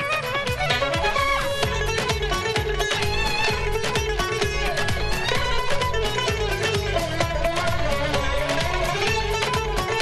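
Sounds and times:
lute playing folk melody: 0.0 - 10.0
steady drum beat: 0.0 - 10.0.

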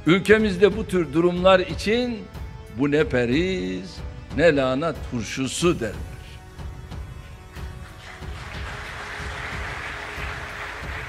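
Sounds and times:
large audience applauding: 7.4 - 11.0.

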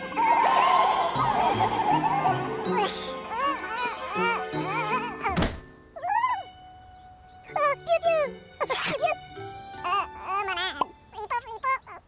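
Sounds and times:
light background music: 0.0 - 12.0
cartoon thunk: 5.3 - 5.7
cartoon character babbling: 7.5 - 9.2, 9.8 - 12.0.

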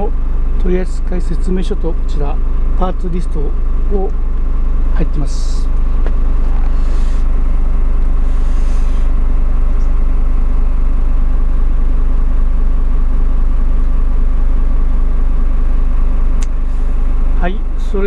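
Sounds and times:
diesel truck engine idling: 0.0 - 18.0.

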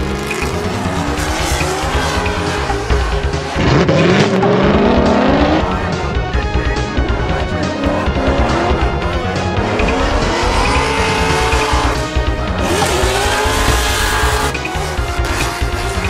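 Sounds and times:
car engines revving: 0.0 - 16.0
music with steady beat: 0.0 - 16.0.

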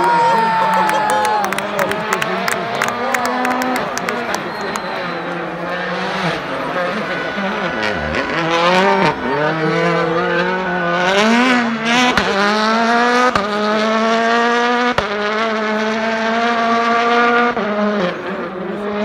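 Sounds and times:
rally car engine accelerating: 0.0 - 19.0.

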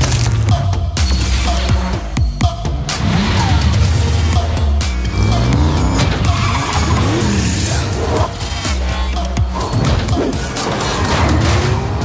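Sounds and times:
trailer music with heavy bass: 0.0 - 12.0
sports car engines revving: 2.8 - 11.0
tyres squealing: 5.1 - 8.0.

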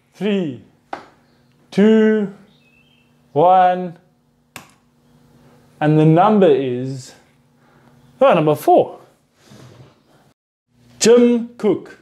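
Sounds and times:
man breathing faintly: 7.2 - 8.1.

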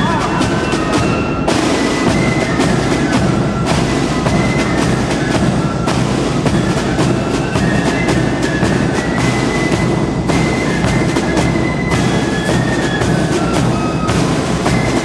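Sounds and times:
marching drums: 0.0 - 15.0.

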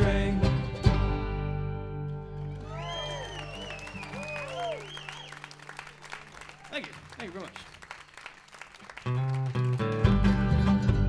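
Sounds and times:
acoustic folk band playing: 0.0 - 4.4, 9.0 - 11.0
audience cheering: 2.4 - 10.1
audience clapping: 2.4 - 10.9.

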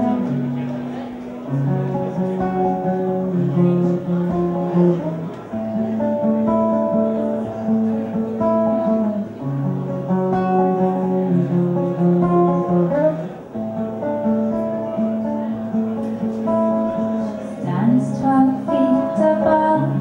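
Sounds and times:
fingerstyle acoustic guitar: 0.0 - 20.0.

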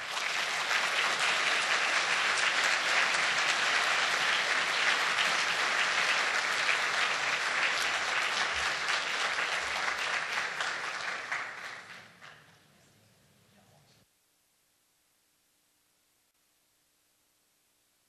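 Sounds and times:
audience applauding: 0.0 - 12.6.

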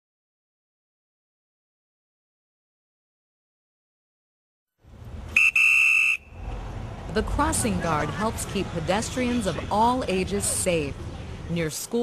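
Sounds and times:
low street traffic rumble: 4.8 - 12.0
shrill whistle blast: 5.4 - 6.4.

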